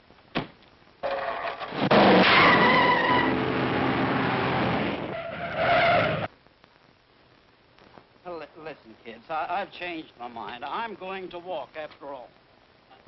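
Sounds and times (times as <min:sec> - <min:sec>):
tyres squealing: 0:01.0 - 0:03.4, 0:05.1 - 0:06.3.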